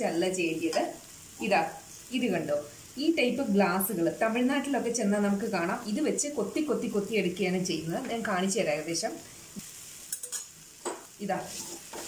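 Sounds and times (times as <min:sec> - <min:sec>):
food frying: 0:00.0 - 0:12.0
metal tumbler scraping in a pan: 0:11.4 - 0:12.0.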